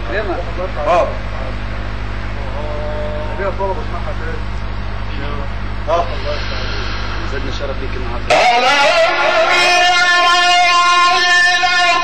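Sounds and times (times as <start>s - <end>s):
electrical hum from loudspeakers: 0.0s - 12.0s.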